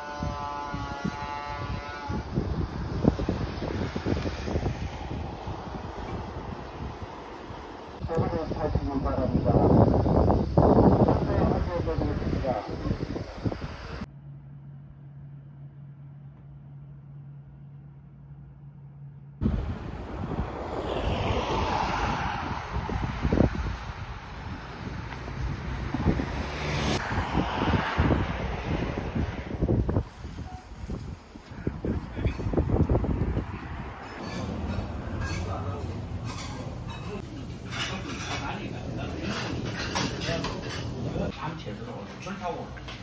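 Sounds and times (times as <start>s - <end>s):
wind buffeting microphone: 0.0s - 14.1s, 19.4s - 37.7s
traffic passing: 0.0s - 43.0s.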